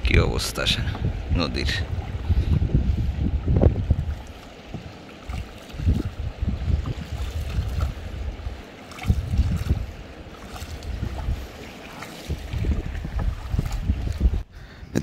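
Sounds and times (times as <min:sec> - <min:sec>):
water rushing around boat: 0:00.0 - 0:15.0
wind buffeting microphone: 0:00.0 - 0:15.0.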